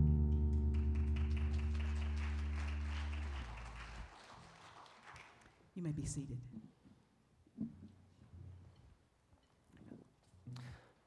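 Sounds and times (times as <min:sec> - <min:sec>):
band chord ringing out: 0:00.0 - 0:03.3.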